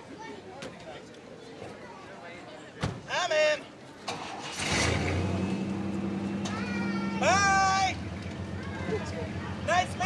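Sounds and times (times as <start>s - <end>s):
truck engine starting and idling: 4.0s - 10.0s.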